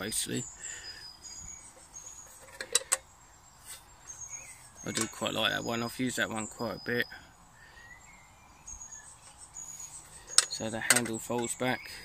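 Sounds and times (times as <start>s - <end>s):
metal tin clicks: 2.4s - 3.0s, 4.9s - 5.2s, 10.3s - 11.5s.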